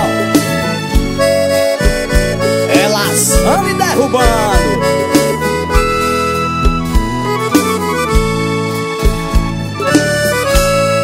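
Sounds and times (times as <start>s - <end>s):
accordion: 0.0s - 11.0s
steady drum beat: 0.0s - 11.0s.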